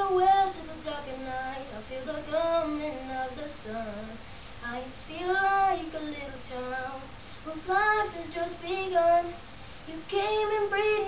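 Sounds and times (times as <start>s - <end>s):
boy singing alone: 0.0s - 11.0s.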